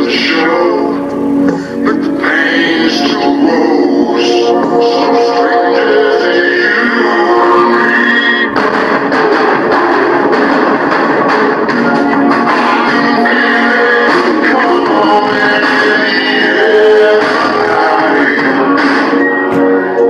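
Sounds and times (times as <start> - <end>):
guitar-led music: 0.0 - 20.0
song with vocals on car stereo: 0.0 - 20.0.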